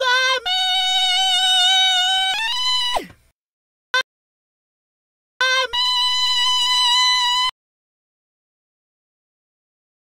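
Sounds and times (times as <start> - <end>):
pitch-corrected robotic singing voice: 0.0 - 3.0, 5.4 - 7.5.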